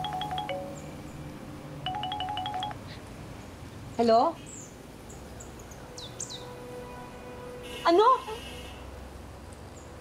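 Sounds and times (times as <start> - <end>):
phone ringtone beeps: 0.0 - 1.0, 1.8 - 2.9.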